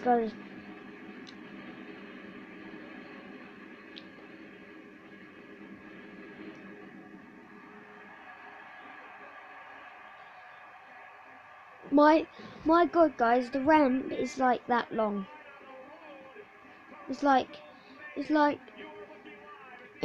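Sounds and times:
arena noise on television: 0:00.0 - 0:20.0
voices on television: 0:00.0 - 0:20.0.

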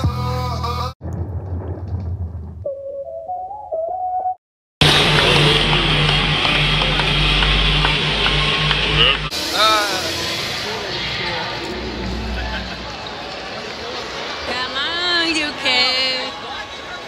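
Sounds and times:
arena crowd din: 0:04.8 - 0:17.0
music over crowd: 0:04.8 - 0:17.0.

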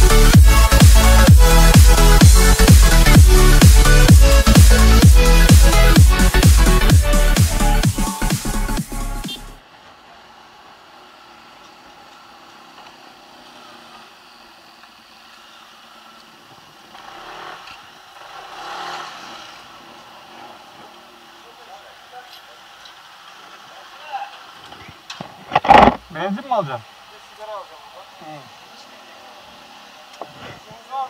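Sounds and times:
scooter engine running: 0:00.0 - 0:31.0.

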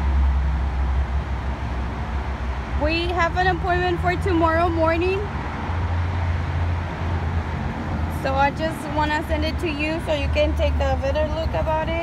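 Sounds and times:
motor vehicles running: 0:00.0 - 0:12.0.

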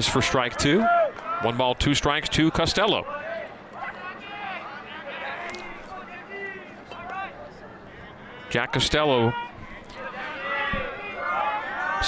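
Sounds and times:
low crowd murmur: 0:00.0 - 0:12.0.

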